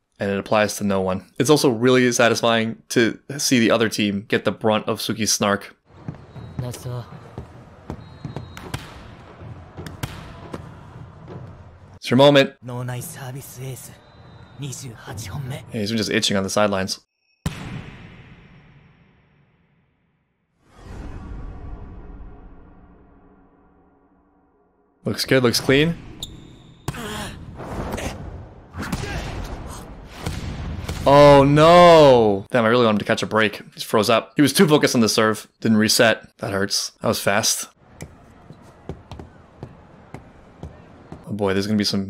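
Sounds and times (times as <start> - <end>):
arena crowd noise: 5.9 - 12.0, 37.8 - 41.8
short steady whistle: 8.0 - 8.8, 14.0 - 14.6
faint dialogue: 12.0 - 17.1.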